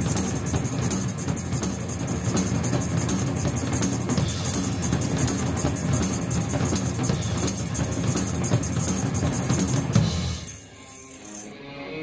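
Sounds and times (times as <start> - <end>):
fast rock drumming: 0.0 - 10.6.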